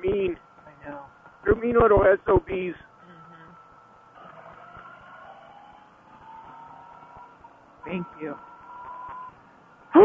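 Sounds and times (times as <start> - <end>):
faint rising whine: 0.0 - 10.0
motorcycle riding noise: 0.0 - 10.0.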